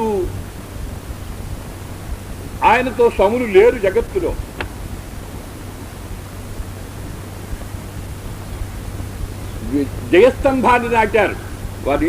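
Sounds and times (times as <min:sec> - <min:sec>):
man speaking: 0:00.0 - 0:00.4, 0:02.6 - 0:04.5, 0:09.6 - 0:12.0
low rumble: 0:00.0 - 0:12.0
recording hiss: 0:00.0 - 0:12.0.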